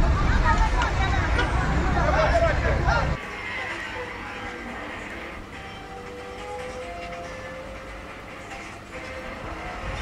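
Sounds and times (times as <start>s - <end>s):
crowd talking and calling out: 0.0s - 5.4s.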